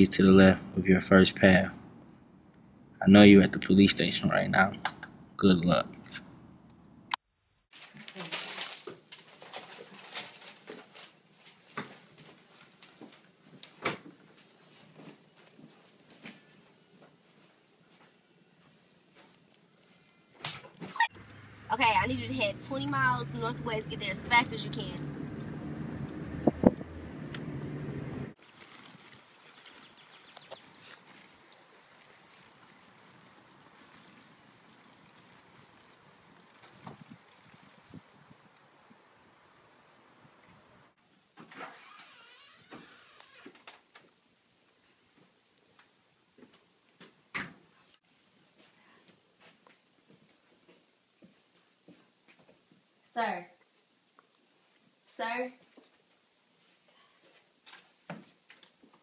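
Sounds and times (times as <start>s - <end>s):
faint outdoor ambience: 0.0s - 59.0s
faint footsteps: 9.3s - 21.3s, 48.2s - 52.8s
car cabin engine and road hum: 21.1s - 28.4s
small ticks: 28.7s - 31.6s.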